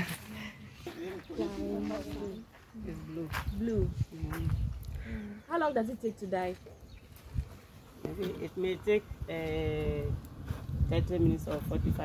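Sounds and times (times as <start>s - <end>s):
nearby speech: 0.0s - 3.5s
indistinct voices talking: 0.0s - 7.0s.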